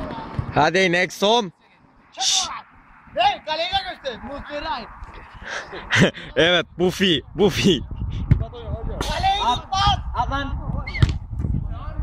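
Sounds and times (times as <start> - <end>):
men talking and calling out: 0.0 - 11.0
football kicked hard: 10.9 - 11.5.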